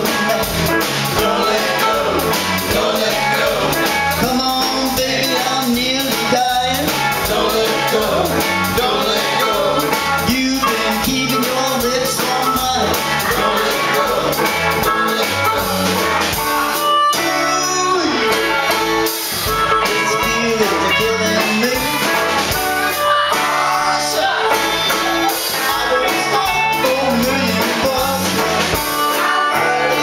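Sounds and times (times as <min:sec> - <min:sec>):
man singing: 0:00.0 - 0:16.0, 0:17.1 - 0:18.8, 0:19.8 - 0:22.4, 0:23.3 - 0:30.0
drum kit: 0:00.0 - 0:30.0
electric guitars: 0:00.0 - 0:30.0.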